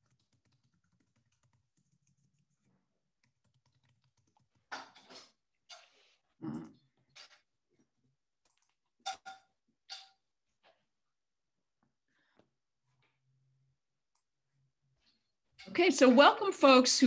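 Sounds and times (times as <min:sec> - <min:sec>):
keyboard typing and mouse clicking: 0:00.0 - 0:04.8, 0:08.4 - 0:09.3.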